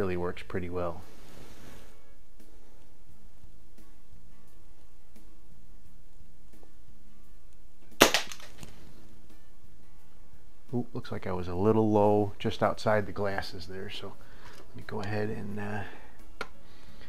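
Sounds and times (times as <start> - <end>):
pistol shot snap: 8.0 - 8.7.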